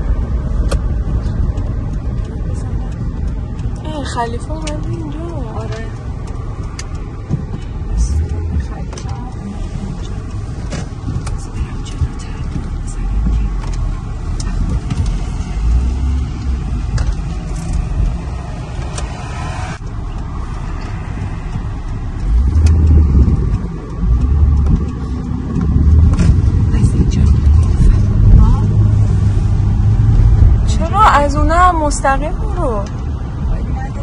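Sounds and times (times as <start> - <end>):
car engine and road rumble: 0.0 - 34.0.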